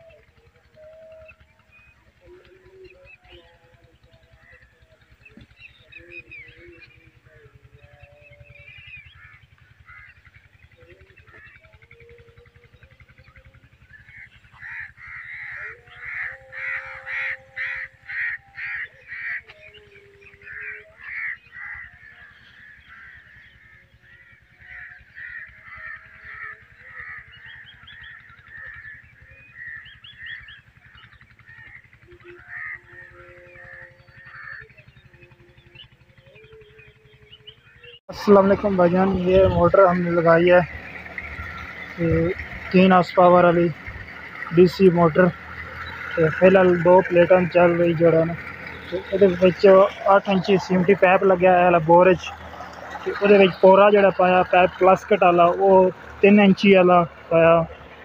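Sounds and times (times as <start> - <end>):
crows cawing: 3.8 - 12.1, 13.1 - 58.0.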